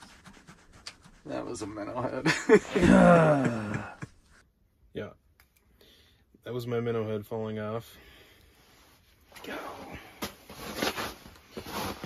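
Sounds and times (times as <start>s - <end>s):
fabric rustling: 10.4s - 12.0s.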